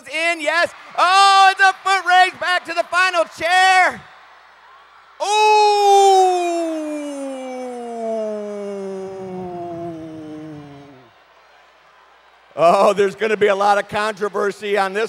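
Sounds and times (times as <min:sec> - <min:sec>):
announcer drawn-out exclamation: 0:05.2 - 0:11.0.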